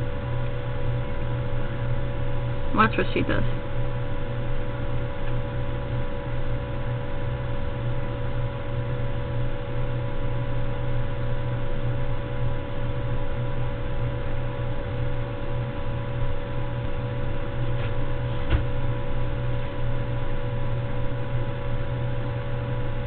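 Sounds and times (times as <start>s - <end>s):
low electrical hum: 0.0s - 23.0s.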